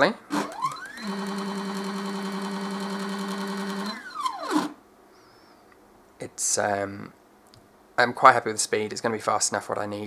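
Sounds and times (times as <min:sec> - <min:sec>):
stepper motor whining: 0:00.3 - 0:04.8.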